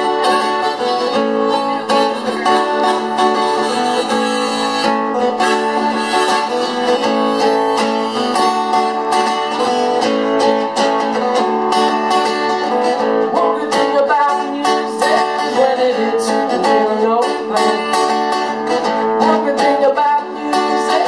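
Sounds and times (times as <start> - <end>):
steel-string acoustic guitar: 0.0 - 21.0.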